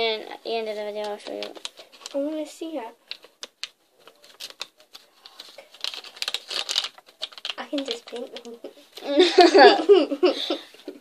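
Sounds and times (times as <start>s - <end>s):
foil packet crinkling and tearing: 0.6s - 2.4s, 3.0s - 9.2s.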